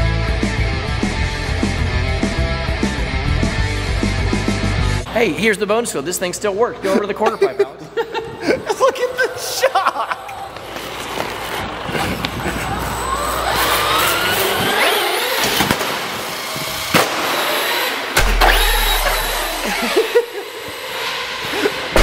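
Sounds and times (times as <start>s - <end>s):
electric motor whining: 11.9s - 22.0s.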